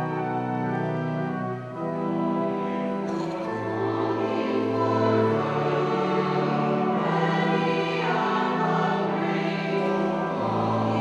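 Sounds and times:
organ holding chords: 0:00.0 - 0:11.0.

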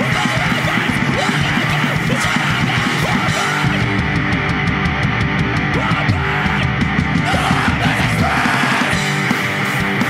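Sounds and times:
shouted vocals: 0:00.0 - 0:03.9, 0:05.7 - 0:09.1
deep bass: 0:00.0 - 0:10.0
hardcore punk music: 0:00.0 - 0:10.0.

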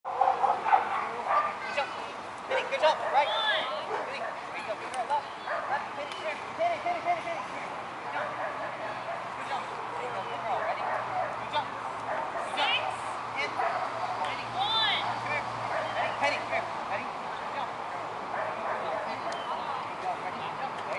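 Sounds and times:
dog barking and yipping: 0:00.1 - 0:01.6, 0:08.2 - 0:09.3, 0:13.6 - 0:14.2, 0:15.1 - 0:16.2
voices: 0:00.1 - 0:20.9.

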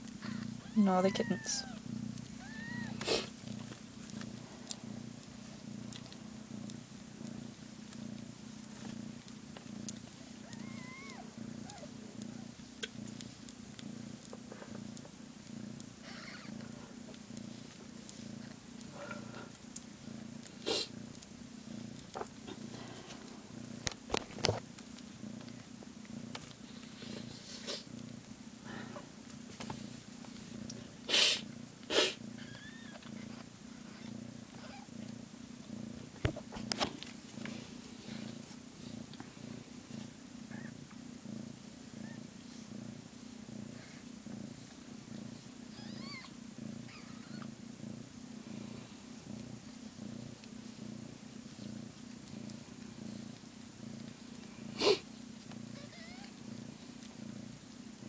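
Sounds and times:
cat purring: 0:00.0 - 0:58.0.

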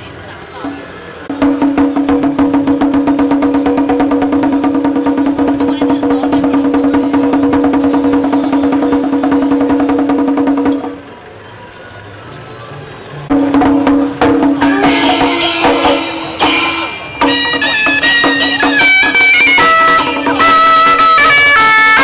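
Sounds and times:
fast barrel drum strokes: 0:01.3 - 0:11.1, 0:13.3 - 0:22.0
steady held note: 0:13.3 - 0:22.0.

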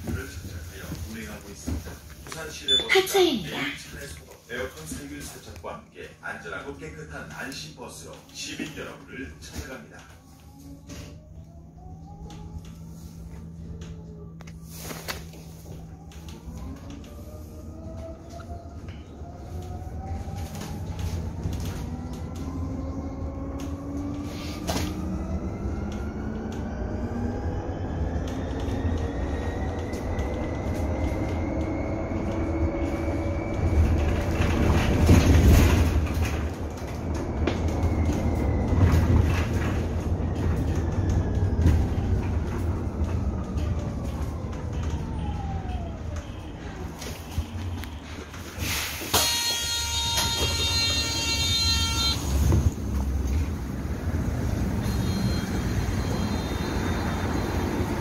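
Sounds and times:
road rumble: 0:00.0 - 0:49.2, 0:50.0 - 0:58.0
electric bus motor whining: 0:07.1 - 0:58.0
electronic warning tone: 0:49.4 - 0:52.6, 0:54.8 - 0:58.0.

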